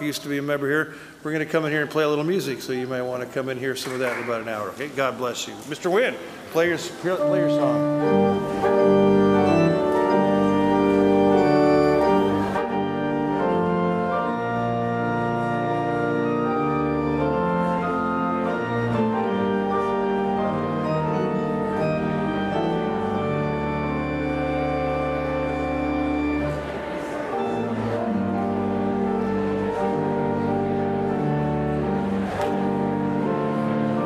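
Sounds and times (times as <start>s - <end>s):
pipe organ playing chords: 0.0s - 34.0s.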